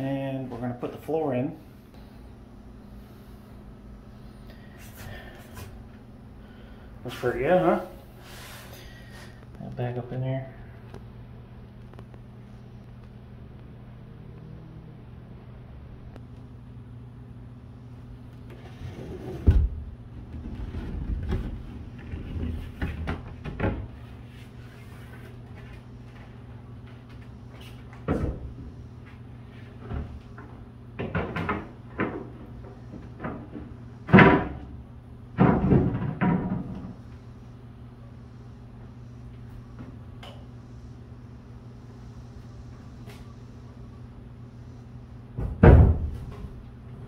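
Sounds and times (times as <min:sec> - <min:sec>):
box fan humming: 0:00.0 - 0:47.0.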